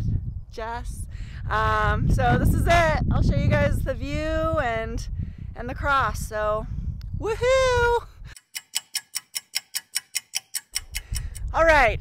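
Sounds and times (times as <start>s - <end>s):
fast clock ticking: 8.4s - 11.5s.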